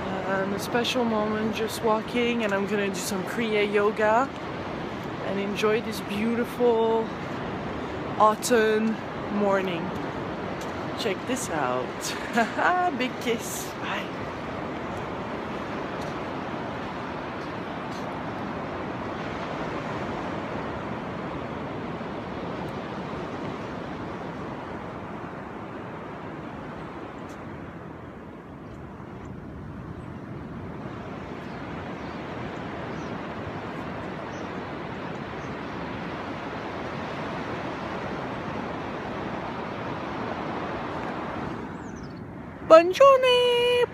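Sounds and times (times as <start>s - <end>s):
surf washing onto sand: 0.0s - 28.2s, 30.6s - 41.8s
wind on microphone: 0.0s - 43.9s.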